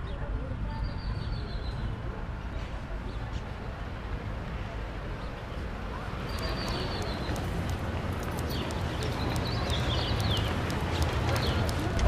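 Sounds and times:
low street rumble: 0:00.0 - 0:12.0
light clicks: 0:06.3 - 0:12.0.

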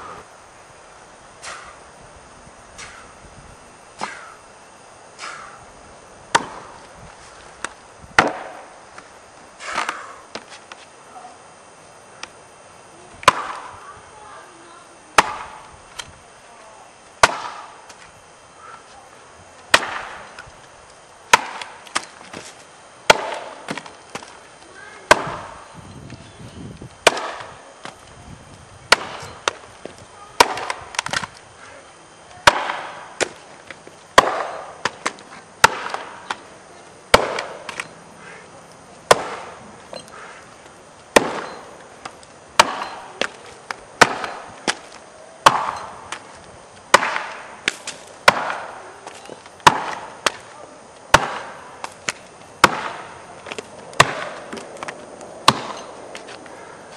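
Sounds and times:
axe chopping wood: 0:06.3 - 0:06.8, 0:07.6 - 0:08.7, 0:09.6 - 0:10.5, 0:13.2 - 0:13.7, 0:15.2 - 0:15.7, 0:17.2 - 0:18.0, 0:19.7 - 0:20.4, 0:21.3 - 0:22.5, 0:23.1 - 0:24.3, 0:25.1 - 0:25.6, 0:27.0 - 0:28.0, 0:28.9 - 0:31.3, 0:32.4 - 0:33.4, 0:34.1 - 0:36.5, 0:37.1 - 0:37.9, 0:39.1 - 0:40.4, 0:41.1 - 0:46.3, 0:46.9 - 0:50.5, 0:51.1 - 0:55.9.

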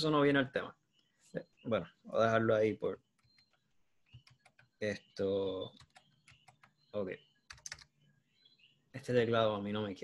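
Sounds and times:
typing on computer keyboard: 0:03.2 - 0:04.8, 0:05.7 - 0:06.8, 0:07.5 - 0:07.9.

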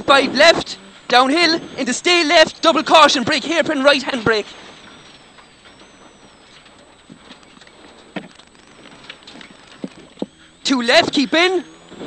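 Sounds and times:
thin wavering high whine: 0:00.0 - 0:12.0.

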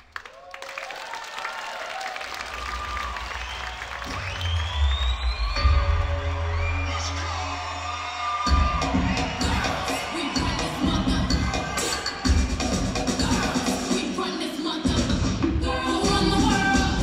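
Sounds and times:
dance music with singing: 0:06.5 - 0:17.0.

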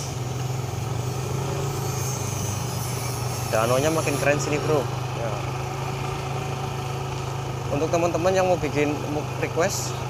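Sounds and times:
motorcycle engine humming: 0:00.0 - 0:10.0.

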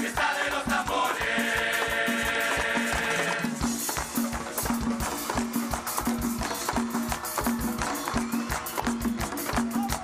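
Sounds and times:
group singing held chord: 0:00.0 - 0:03.6
drums and cymbals dance rhythm: 0:00.0 - 0:10.0.

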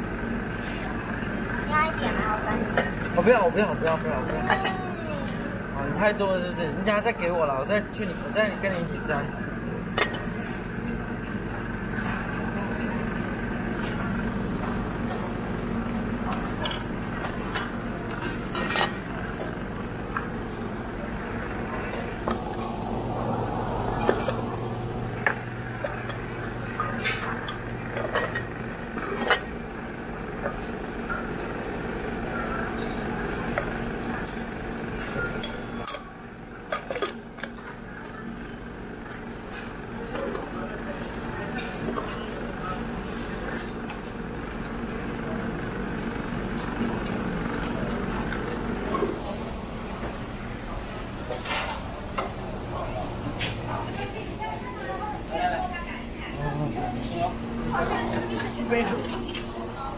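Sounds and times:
indistinct chatter of diners: 0:00.0 - 0:59.9
steady low hum: 0:00.0 - 0:59.9.

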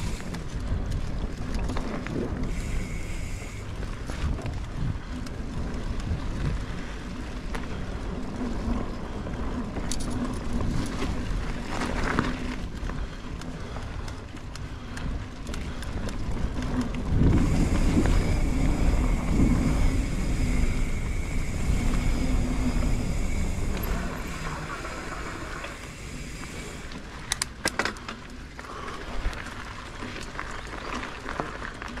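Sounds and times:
wind rumble on microphone: 0:00.0 - 0:27.6
bike tyres rolling on dirt: 0:00.0 - 0:32.0
high steady whir: 0:02.5 - 0:03.7, 0:17.2 - 0:27.4.

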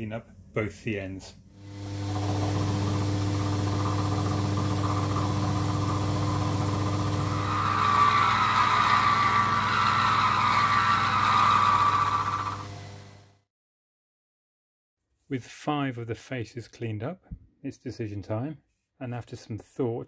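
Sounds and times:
end mill cutting cast iron: 0:01.6 - 0:13.2
spindle motor humming: 0:01.6 - 0:13.2.

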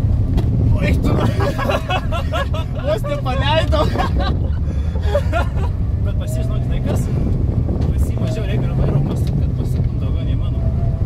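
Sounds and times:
car engine and road noise: 0:00.0 - 0:11.0
people talking: 0:00.7 - 0:04.3, 0:06.0 - 0:07.2, 0:07.8 - 0:10.7.

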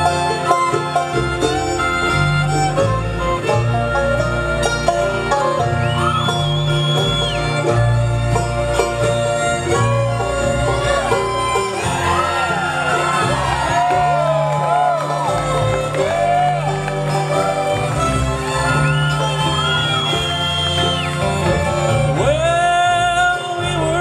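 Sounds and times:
acoustic guitars: 0:00.0 - 0:24.0
banjo: 0:00.0 - 0:24.0
fiddles and cellos: 0:00.0 - 0:24.0.

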